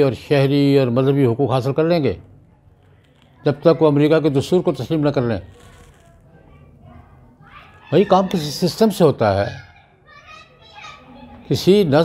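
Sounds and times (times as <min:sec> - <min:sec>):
faint children's voices: 0:00.0 - 0:12.0.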